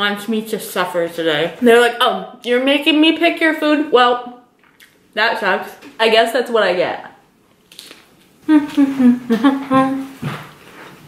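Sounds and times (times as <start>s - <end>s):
woman laughing with mouth full: 8.5s - 10.1s.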